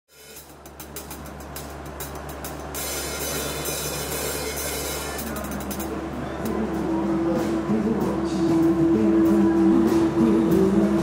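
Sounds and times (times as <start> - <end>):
low steady drone: 0.1 - 11.0.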